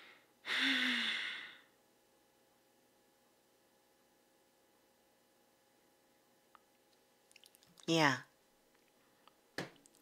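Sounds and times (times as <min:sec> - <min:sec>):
woman sighing: 0:00.4 - 0:01.7.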